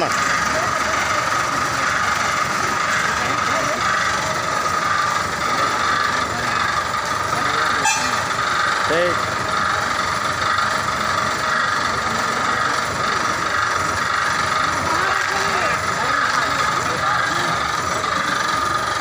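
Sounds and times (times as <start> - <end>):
diesel bus engine idling: 0.0 - 19.0
people's voices: 0.0 - 19.0.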